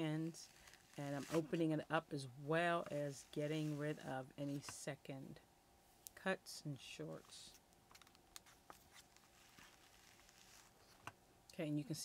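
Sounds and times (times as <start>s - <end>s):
wool rustling on carder teeth: 0.3s - 1.6s, 7.5s - 11.1s.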